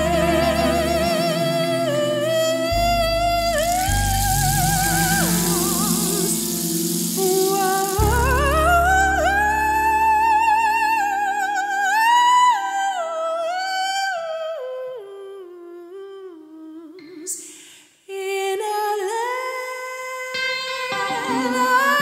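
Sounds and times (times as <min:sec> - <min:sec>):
low piano and keyboard notes: 0:00.0 - 0:12.4
woman singing with vibrato: 0:00.0 - 0:17.5, 0:18.1 - 0:22.0
rainstick rattling hiss: 0:03.6 - 0:09.5.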